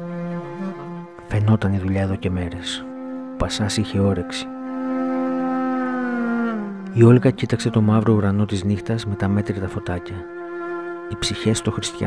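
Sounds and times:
clarinet playing a lament: 0.0 - 12.0.

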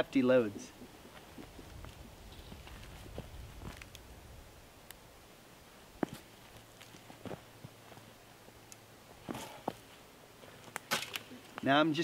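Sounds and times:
rustling leaves: 0.0 - 12.0
footsteps on dry leaves: 1.1 - 4.0.

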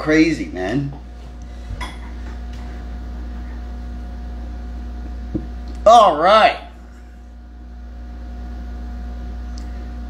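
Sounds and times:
guitar amplifier mains hum: 0.0 - 10.0.

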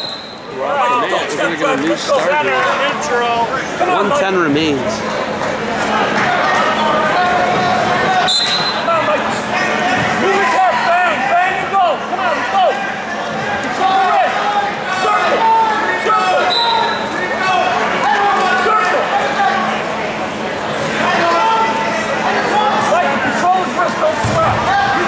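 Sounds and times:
referee's whistle: 0.0 - 0.6, 8.2 - 8.9, 16.4 - 17.2
people shouting: 6.2 - 19.7.

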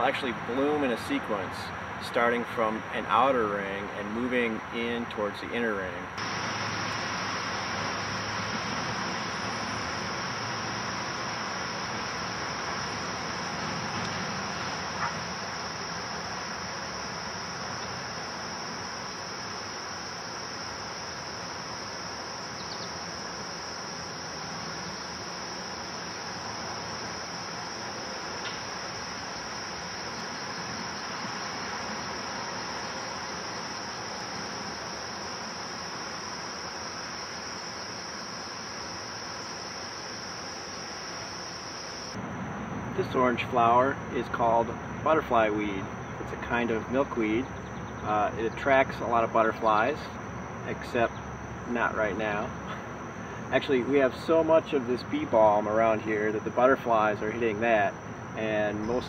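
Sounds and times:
low background noise: 0.0 - 59.0
crickets trilling: 6.2 - 59.0.

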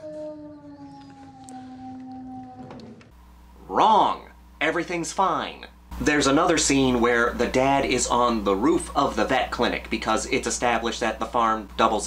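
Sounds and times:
dog howling: 0.0 - 3.1.

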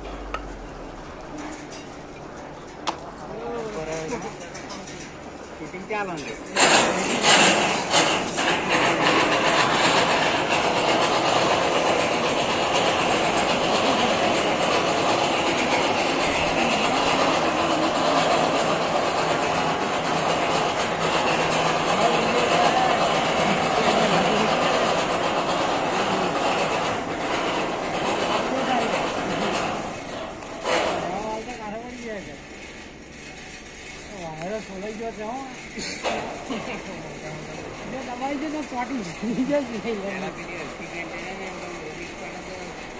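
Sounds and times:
crane wheels clattering on rails: 0.0 - 42.9.

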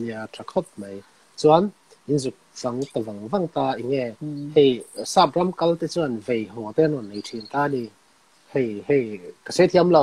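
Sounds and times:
man talking: 0.0 - 7.9, 8.6 - 10.0.

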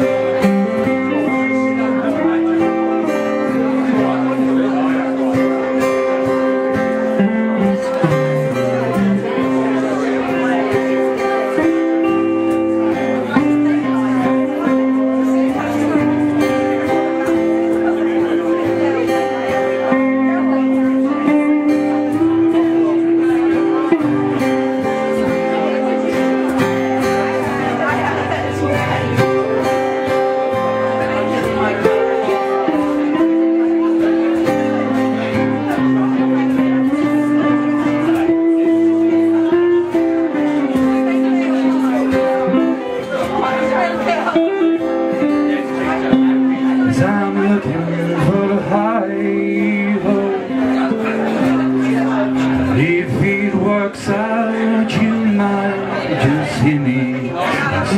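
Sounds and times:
acoustic guitar strumming chords: 0.0 - 57.9
audience chatter: 0.0 - 57.9
electric guitar bluesy lead: 0.0 - 57.9.

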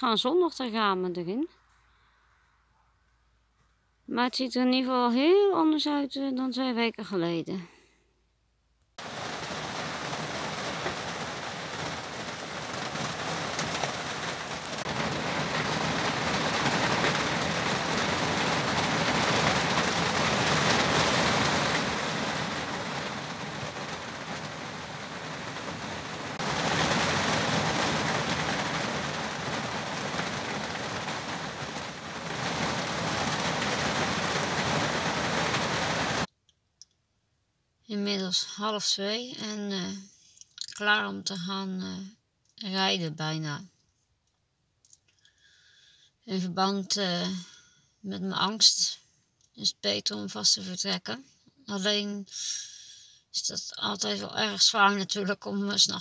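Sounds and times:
heavy rain pouring: 9.0 - 36.3.

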